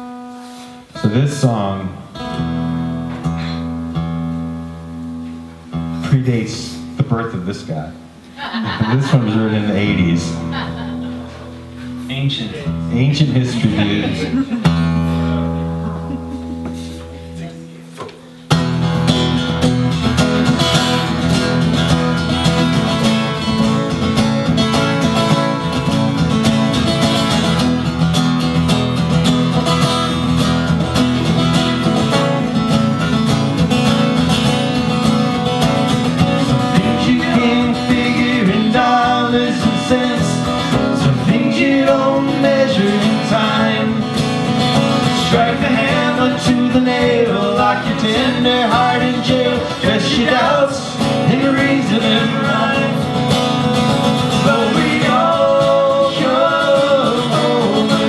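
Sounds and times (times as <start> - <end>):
acoustic guitars strumming: 0.0 - 58.0
man singing: 12.6 - 14.6, 36.2 - 53.3, 54.0 - 58.0.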